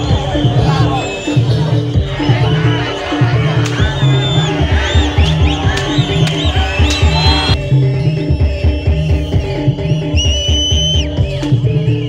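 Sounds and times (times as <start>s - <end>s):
high whistle-like tone: 0.0s - 2.6s, 3.7s - 12.0s
drums and pitched percussion: 0.0s - 12.0s.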